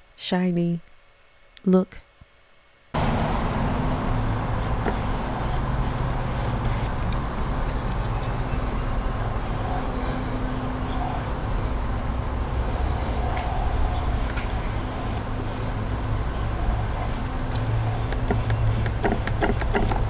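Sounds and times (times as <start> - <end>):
low mechanical hum: 0.0 - 20.0
outdoor rumble: 3.0 - 20.0.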